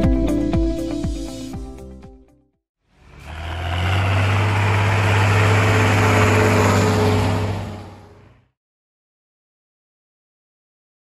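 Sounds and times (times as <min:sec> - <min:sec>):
large diesel engine running: 0:02.9 - 0:08.5.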